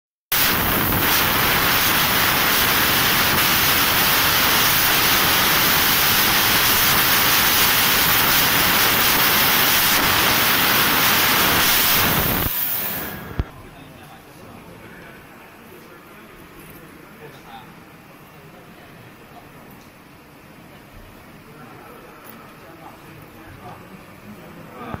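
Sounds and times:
laser cutter gas jet hiss: 0:00.3 - 0:13.5.

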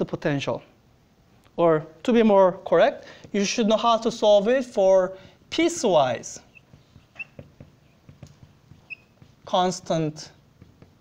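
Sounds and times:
marker tapping and stroking whiteboard: 0:03.2 - 0:11.0
marker squeaks: 0:05.5 - 0:11.0.

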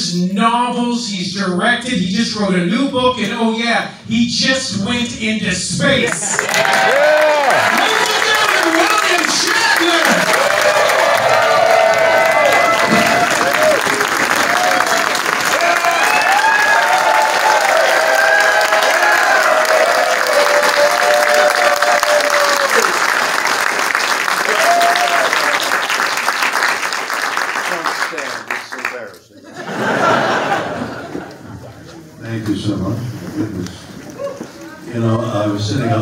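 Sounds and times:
audience clapping: 0:06.0 - 0:31.3
people calling out and whooping: 0:06.1 - 0:22.9.

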